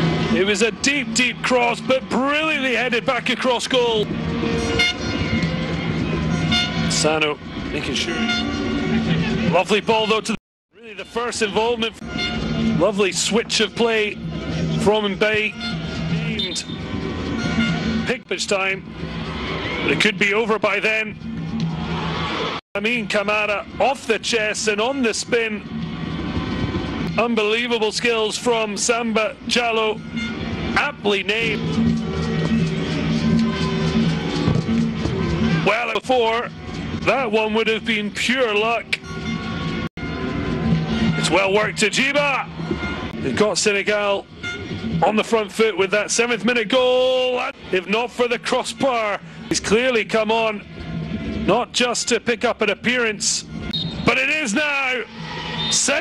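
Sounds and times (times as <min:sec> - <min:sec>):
stadium crowd noise: 0:00.0 - 0:56.0
background music with steady beat: 0:11.6 - 0:46.3.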